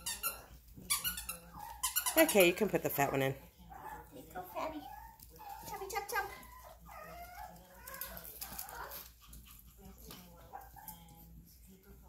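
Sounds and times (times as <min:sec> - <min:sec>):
puppies whimpering and yipping: 0:03.8 - 0:09.4.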